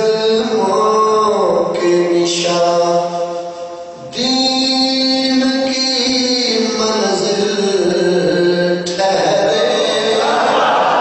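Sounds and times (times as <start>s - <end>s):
man chanting through a microphone: 0.0s - 10.9s.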